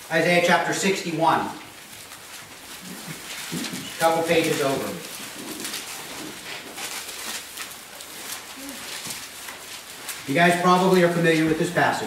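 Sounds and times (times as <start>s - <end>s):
paper pages rustling: 1.3s - 12.0s.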